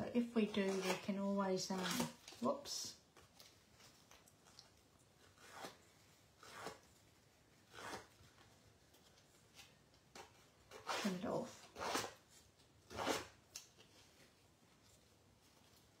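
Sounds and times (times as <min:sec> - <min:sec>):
tool scraping cardstock edges: 0:06.4 - 0:06.8.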